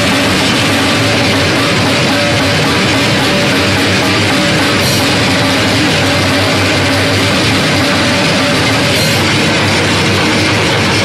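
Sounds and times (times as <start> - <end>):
drum kit played hard: 0.0 - 11.0.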